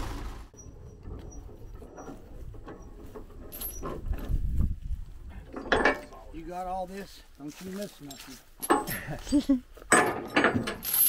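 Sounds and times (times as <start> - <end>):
steel chain clinking: 0.6 - 4.3, 5.4 - 6.2, 7.9 - 11.0.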